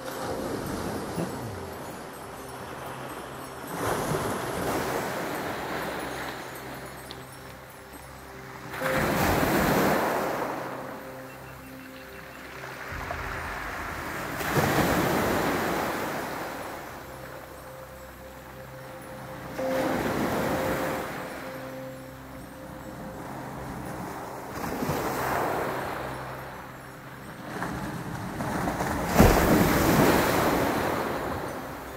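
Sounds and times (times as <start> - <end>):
waves breaking on pebbles: 12.7 - 16.9.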